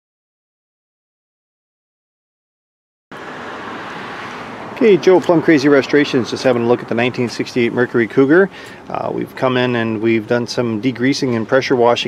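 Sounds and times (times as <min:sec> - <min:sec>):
background rumble and hiss: 0:04.8 - 0:12.0.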